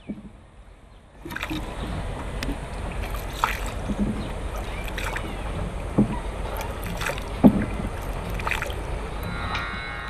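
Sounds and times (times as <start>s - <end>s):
oar knocking on wooden hull: 0.0s - 0.4s, 1.3s - 8.7s
water noise: 0.0s - 10.0s
wind: 0.0s - 10.0s.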